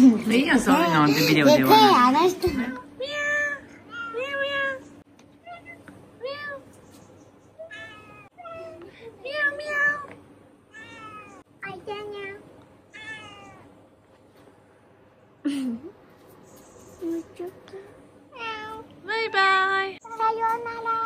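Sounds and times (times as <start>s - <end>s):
cat meowing: 7.6s - 8.8s, 10.7s - 11.4s, 12.9s - 13.7s.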